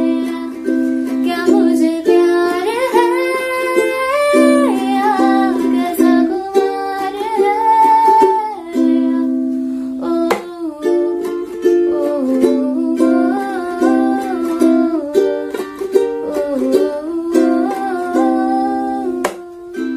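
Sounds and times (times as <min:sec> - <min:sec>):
ukulele strumming: 0:00.0 - 0:19.9
woman singing wordless melody: 0:00.0 - 0:19.9.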